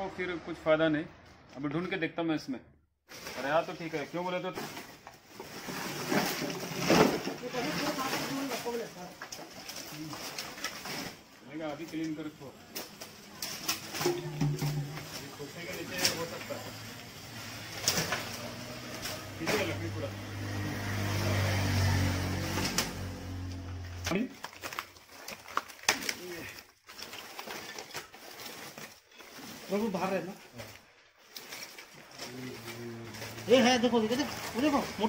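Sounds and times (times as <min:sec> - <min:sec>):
sticks knocking and rustling: 0:12.7 - 0:16.6, 0:22.5 - 0:35.0.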